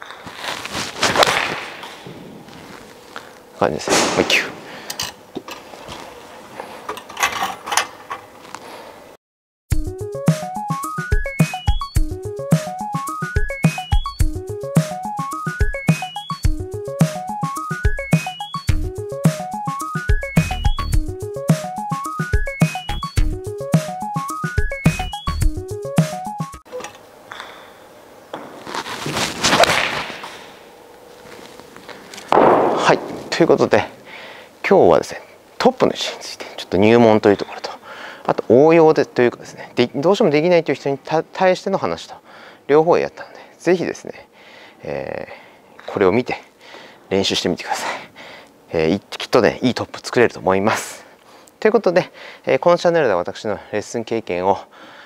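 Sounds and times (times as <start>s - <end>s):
golf club striking ball: 32.3s - 33.3s.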